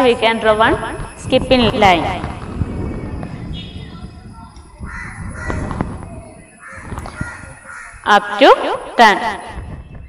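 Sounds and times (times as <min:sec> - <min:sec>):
crow cawing: 0:04.8 - 0:05.9, 0:06.5 - 0:08.1.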